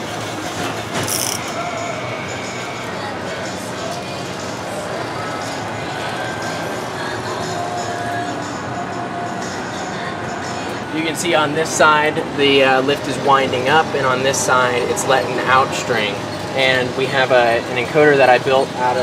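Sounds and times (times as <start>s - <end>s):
toy roller coaster cable lift: 0.0s - 8.5s, 11.7s - 19.0s
background music: 0.0s - 19.0s
faint voices: 1.2s - 19.0s.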